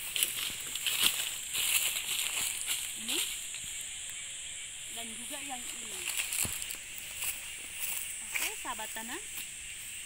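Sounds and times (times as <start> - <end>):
footsteps on dry leaves and grass: 0.0 - 3.9, 5.0 - 10.0.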